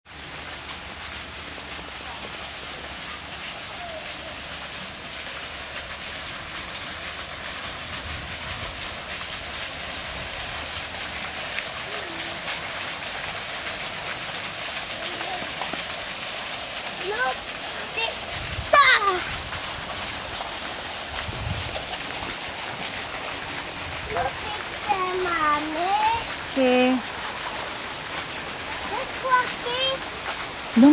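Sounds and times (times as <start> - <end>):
fountain water splashing: 0.1 - 30.9.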